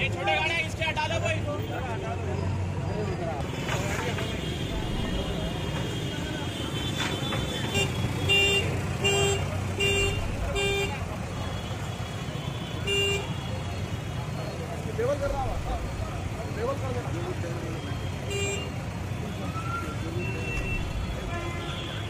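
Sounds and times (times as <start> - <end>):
street crowd chatter: 0.0 - 22.0
traffic rumble: 0.0 - 22.0
vehicle horn toots: 5.9 - 11.8, 12.6 - 13.6.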